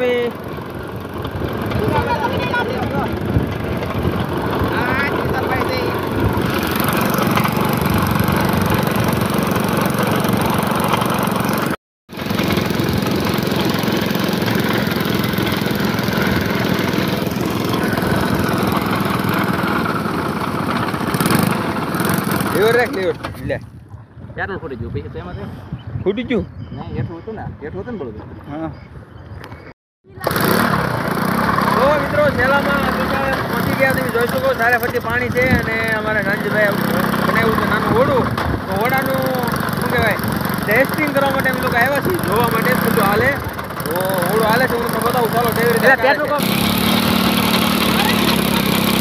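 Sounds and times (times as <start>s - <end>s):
small motorcycle engine running: 0.0s - 23.2s, 30.1s - 49.0s
propeller churning water: 0.0s - 25.4s, 30.0s - 49.0s.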